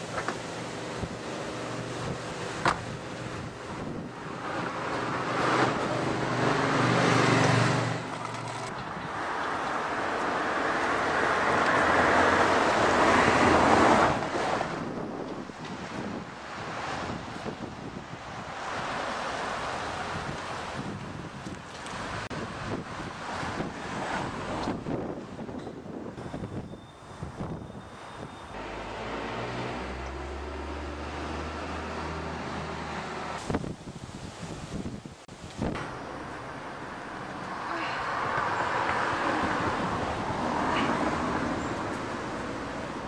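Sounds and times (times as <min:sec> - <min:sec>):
wind rumbling on microphone: 0:00.0 - 0:28.6, 0:29.7 - 0:43.0
passing traffic: 0:00.0 - 0:43.0.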